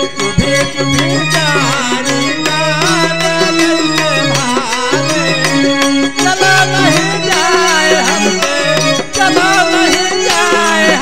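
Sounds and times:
devotional folk melody: 0.0 - 11.0.

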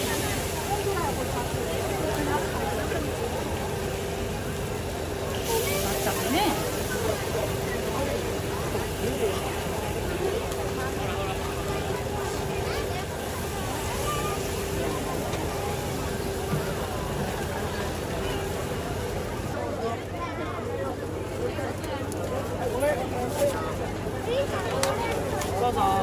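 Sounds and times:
griddle hissing: 0.0 - 19.6
crowd chatter: 0.0 - 26.0.

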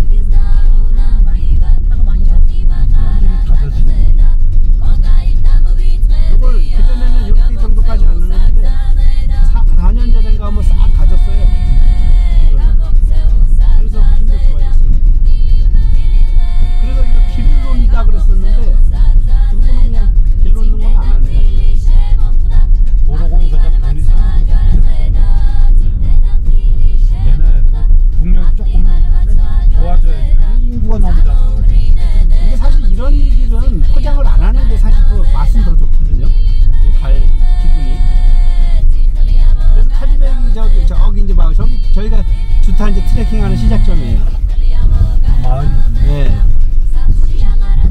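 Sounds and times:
music with singing voice: 0.0 - 47.9.

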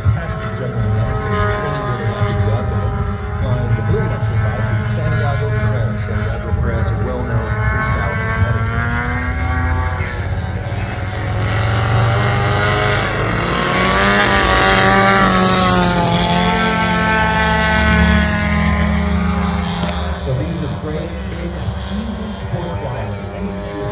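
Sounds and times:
model plane engines droning: 0.0 - 23.9.

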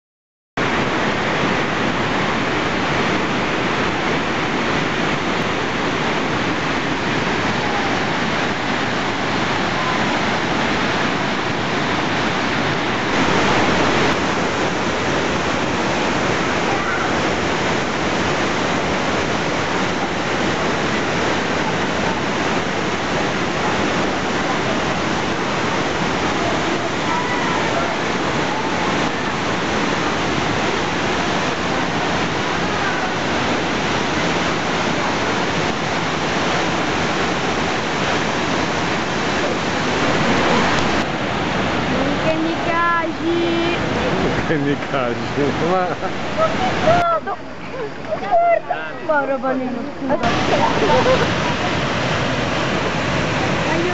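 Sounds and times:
waterfall rushing: 0.6 - 53.9.

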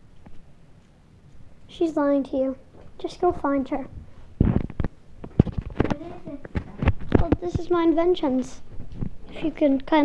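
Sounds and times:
low thumps and sharp knocks: 4.4 - 8.0.

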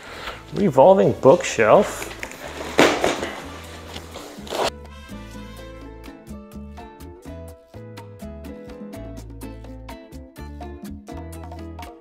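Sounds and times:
background music: 0.0 - 12.0
cardboard box rustling and scraping: 2.4 - 4.7.

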